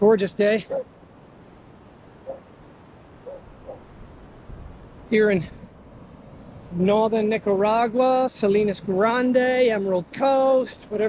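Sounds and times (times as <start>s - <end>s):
wind and surf hiss: 0.0s - 11.0s
dog whining: 2.2s - 2.5s, 3.2s - 3.8s.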